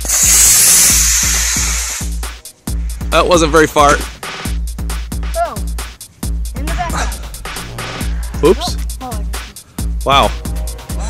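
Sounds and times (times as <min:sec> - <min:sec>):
rocket motor rushing hiss: 0:00.0 - 0:02.4
electronic music with thumping beat: 0:00.0 - 0:11.0.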